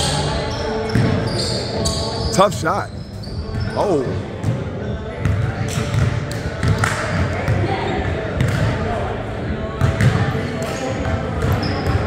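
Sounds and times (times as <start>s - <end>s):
players' voices: 0.1s - 11.8s.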